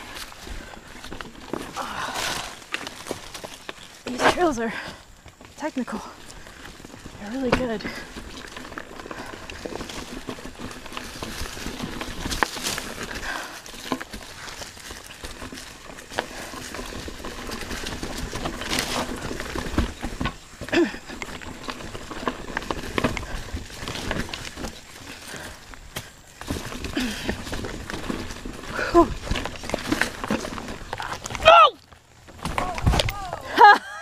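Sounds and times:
bike clattering over rocks: 0.0s - 34.0s
bike tyres rolling over dirt: 0.0s - 34.0s.

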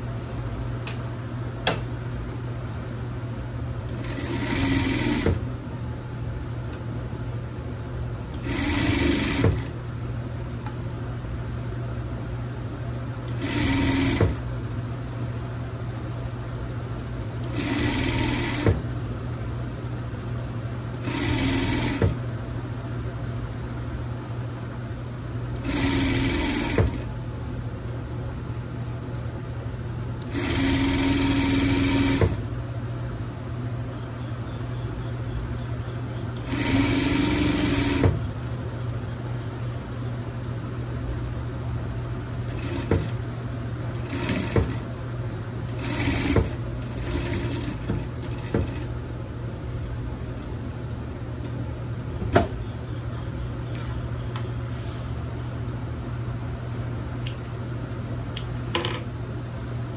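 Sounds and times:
steady low hum: 0.0s - 59.9s
sewing machine stitching: 3.9s - 5.4s, 8.4s - 9.8s, 13.3s - 14.4s, 17.4s - 18.8s, 21.0s - 22.2s, 25.6s - 27.1s, 30.3s - 32.4s, 36.4s - 38.2s, 42.5s - 43.2s, 44.0s - 44.9s, 45.7s - 48.9s
sewing machine stopping click: 25.6s - 27.0s.

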